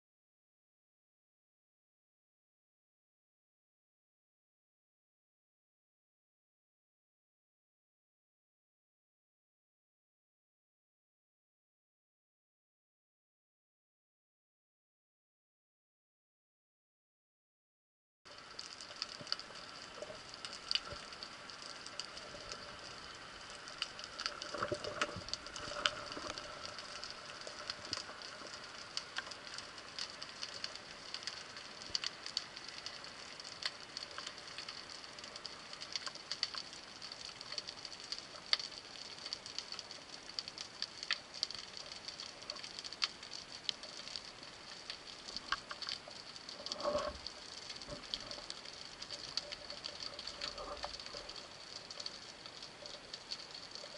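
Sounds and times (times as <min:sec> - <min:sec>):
underwater crackle of clicks: 0:18.3 - 0:53.9.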